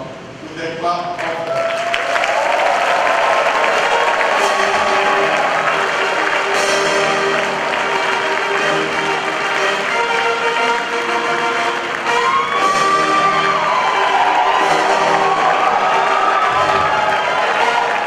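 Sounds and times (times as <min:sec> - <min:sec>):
congregation clapping and cheering: 0:01.1 - 0:18.0
church music: 0:03.2 - 0:18.0.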